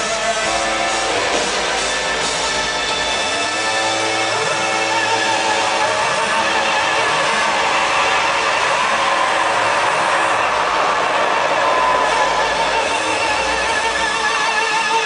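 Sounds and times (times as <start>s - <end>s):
live band music over loudspeakers: 0.0s - 15.0s.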